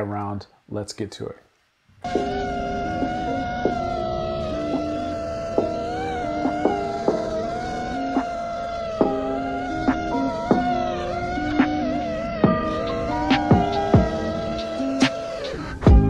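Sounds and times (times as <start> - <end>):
high synth tone: 2.0 - 16.0
low held notes: 2.0 - 16.0.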